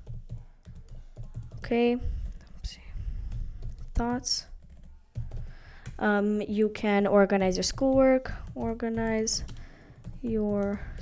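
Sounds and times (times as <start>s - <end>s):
computer keyboard typing: 0.0s - 2.7s, 3.3s - 6.0s, 7.3s - 11.0s.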